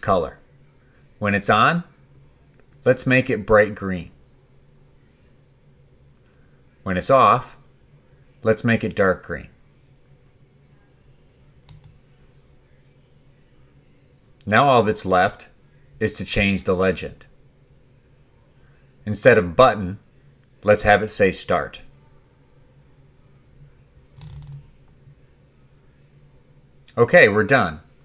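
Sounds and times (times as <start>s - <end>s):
faint low hum: 0.0s - 28.0s
computer mouse click: 11.6s - 12.0s.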